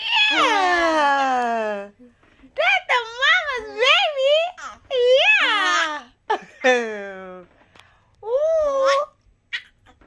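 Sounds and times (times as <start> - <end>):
baby squealing: 0.0 - 0.6, 8.8 - 10.0.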